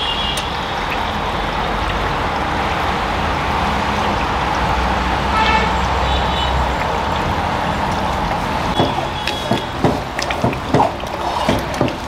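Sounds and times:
traffic passing: 0:00.0 - 0:12.0
short horn toot: 0:05.3 - 0:05.8
burner under simmering pot: 0:06.7 - 0:12.0.

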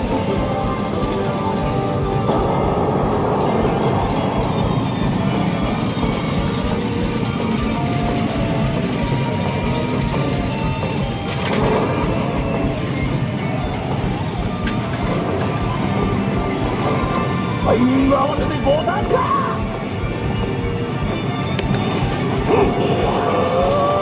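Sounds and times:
arcade machine game music: 0:00.0 - 0:24.0
game centre din: 0:00.0 - 0:24.0.

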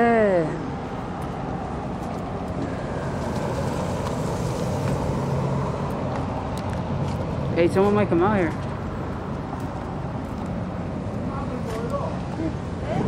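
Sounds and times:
road traffic hum: 0:00.0 - 0:13.0.

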